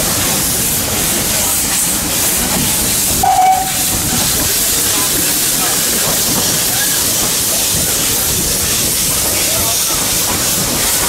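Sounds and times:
steam locomotive hissing: 0:00.0 - 0:11.0
steam whistle note: 0:03.2 - 0:03.8.

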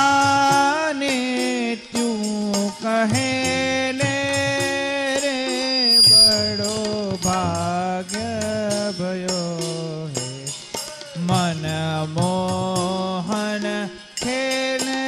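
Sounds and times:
harmonium: 0:00.0 - 0:15.0
man singing devotional song: 0:00.0 - 0:15.0
steady percussion beat: 0:00.0 - 0:15.0.

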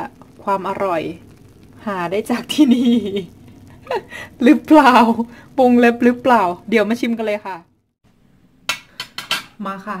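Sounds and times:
woman's voice: 0:04.4 - 0:07.7, 0:09.6 - 0:10.0
cutlery and plates clinking: 0:08.7 - 0:09.5.

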